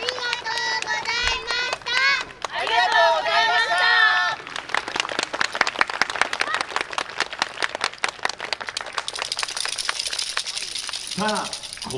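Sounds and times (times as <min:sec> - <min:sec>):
audience applauding: 0:04.1 - 0:11.9.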